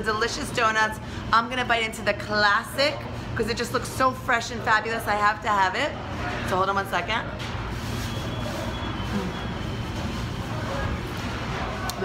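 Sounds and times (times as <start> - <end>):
low hum of bakery machinery: 0.0 - 12.0.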